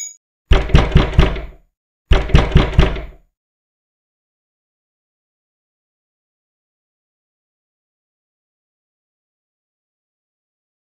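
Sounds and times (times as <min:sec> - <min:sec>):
knocking on a door: 0:00.5 - 0:03.2.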